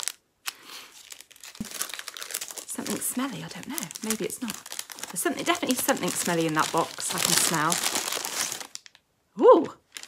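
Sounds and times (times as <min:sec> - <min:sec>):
paper gift bag crinkling: 0:00.0 - 0:09.0.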